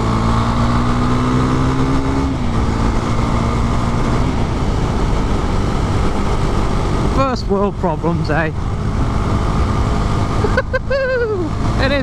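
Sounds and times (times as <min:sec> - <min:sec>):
motorcycle engine running: 0:00.0 - 0:12.0
rider laughing: 0:10.2 - 0:11.6.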